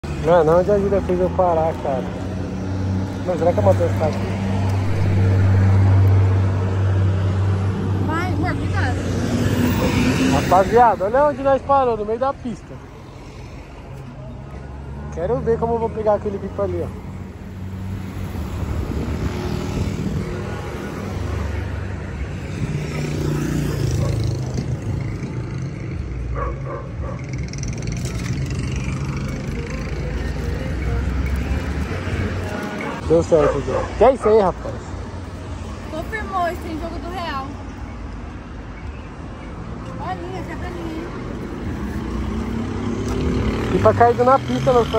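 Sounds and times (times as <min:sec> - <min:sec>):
car engines passing: 0:00.0 - 0:44.9.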